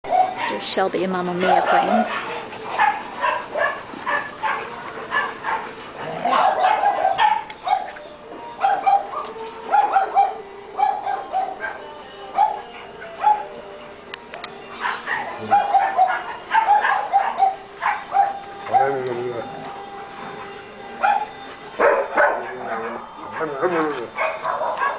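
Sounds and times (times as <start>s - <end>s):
dogs barking: 0.1s - 13.8s, 14.5s - 24.9s.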